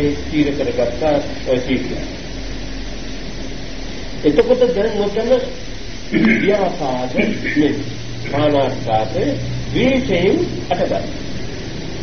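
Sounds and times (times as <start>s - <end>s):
low hum: 0.0s - 12.0s
steady hiss: 0.0s - 12.0s.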